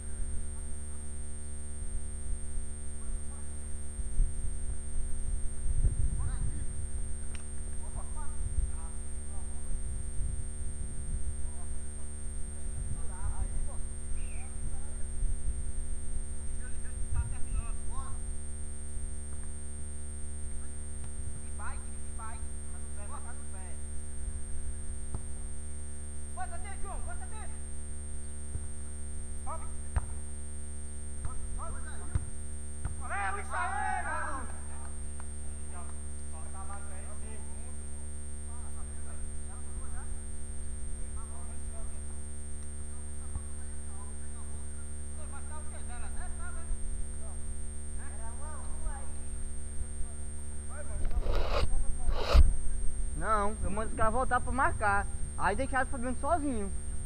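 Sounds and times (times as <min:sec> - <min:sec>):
low hum with high whine: 0:00.0 - 0:57.0.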